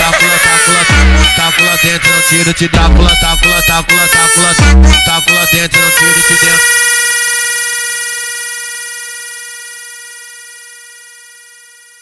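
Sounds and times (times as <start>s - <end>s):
funk beat with vocals: 0.0s - 6.6s.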